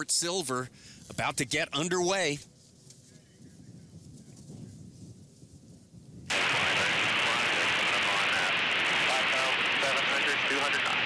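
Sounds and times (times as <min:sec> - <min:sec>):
faint outdoor rumble and hiss: 0:00.0 - 0:04.7, 0:06.3 - 0:11.0.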